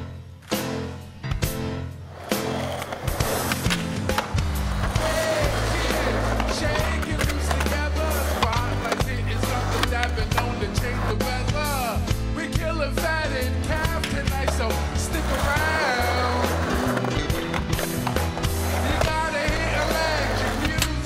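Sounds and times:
skateboard wheels rolling on concrete: 0:02.0 - 0:11.9, 0:13.6 - 0:21.0
band music with bass line: 0:03.2 - 0:21.0.

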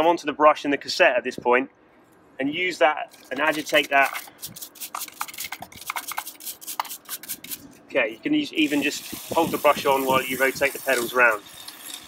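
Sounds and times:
brush scrubbing bicycle cassette: 0:03.1 - 0:07.7, 0:08.6 - 0:12.0.

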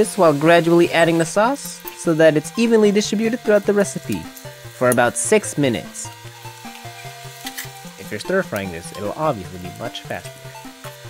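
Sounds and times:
slow melodic background music: 0:00.0 - 0:11.0.

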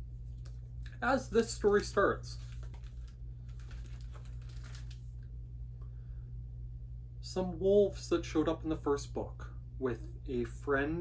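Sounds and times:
low electrical hum: 0:00.0 - 0:11.0
pages being leafed through: 0:01.4 - 0:05.2.

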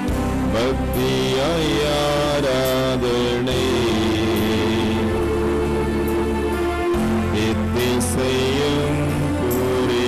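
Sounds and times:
instrumental accompaniment: 0:00.0 - 0:10.0
voice singing sliding notes: 0:00.5 - 0:10.0.

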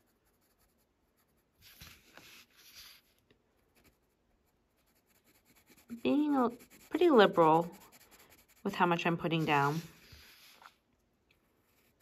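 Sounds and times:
pencil scratching on paper: 0:00.0 - 0:10.8, 0:11.6 - 0:12.0.

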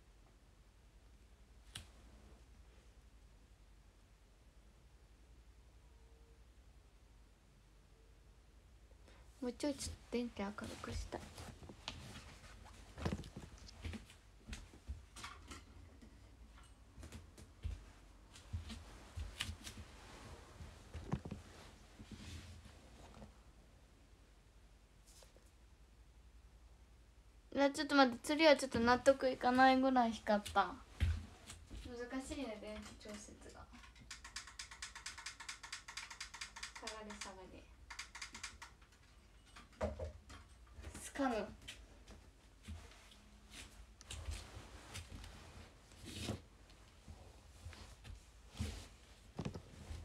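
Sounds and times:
smartphone being handled: 0:17.0 - 0:22.3, 0:48.6 - 0:50.0
fast small clicks: 0:32.8 - 0:40.6.

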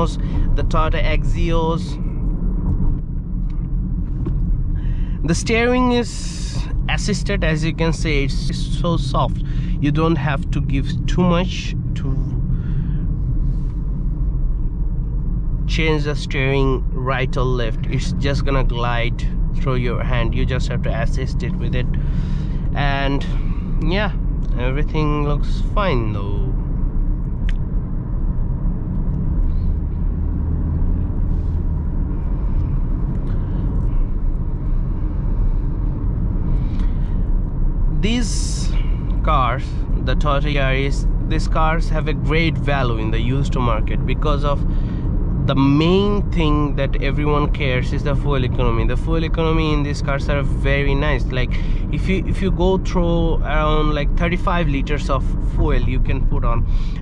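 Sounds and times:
car interior engine and road noise: 0:00.0 - 0:57.0.

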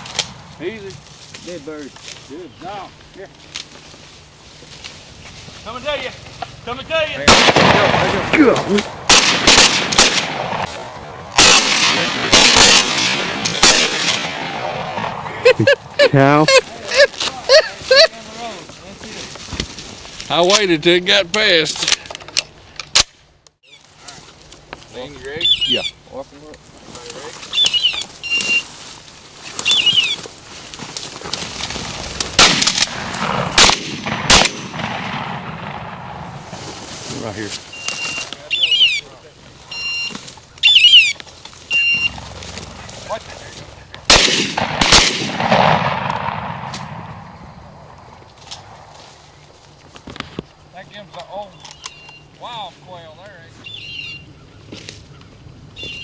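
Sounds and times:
shotgun shots: 0:07.2 - 0:15.3, 0:32.1 - 0:36.4, 0:44.1 - 0:48.0
short high chirps: 0:39.7 - 0:42.2.

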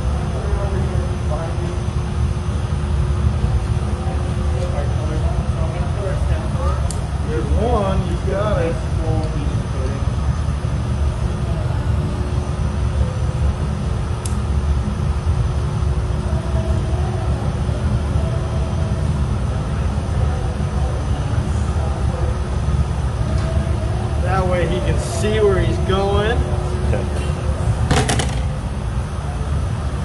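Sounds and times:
furnaces and fans roaring: 0:00.0 - 0:30.0.

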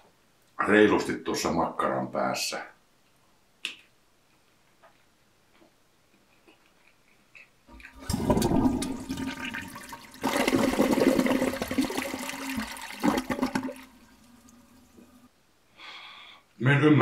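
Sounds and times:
water rushing: 0:07.7 - 0:15.3.

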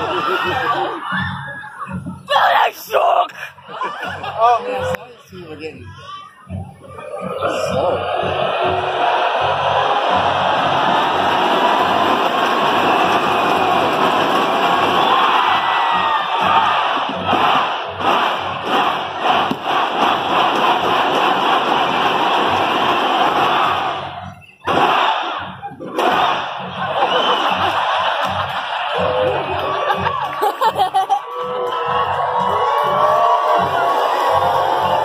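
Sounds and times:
crowd shouting and cheering: 0:00.0 - 0:35.0
music: 0:00.0 - 0:35.0.

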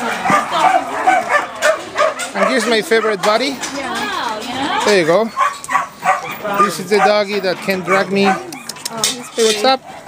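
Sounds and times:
dogs barking and whining: 0:00.0 - 0:03.6, 0:04.7 - 0:10.0.

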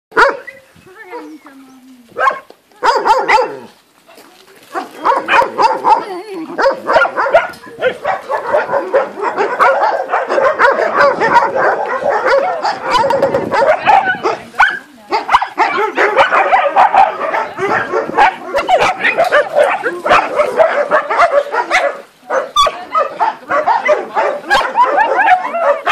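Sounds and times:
dogs barking: 0:00.1 - 0:01.4, 0:02.2 - 0:03.7, 0:04.7 - 0:25.9
puppies yipping: 0:00.2 - 0:03.7, 0:04.8 - 0:25.9.

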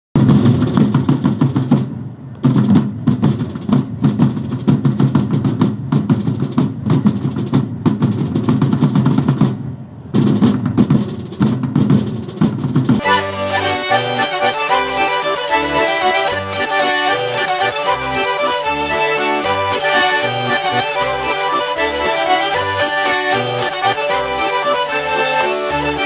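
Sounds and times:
fast rolling snare drum beat: 0:00.2 - 0:25.3.

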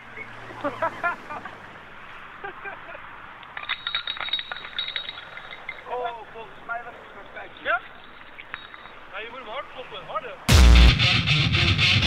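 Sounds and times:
clinking clicks: 0:03.4 - 0:06.3, 0:07.3 - 0:09.3.

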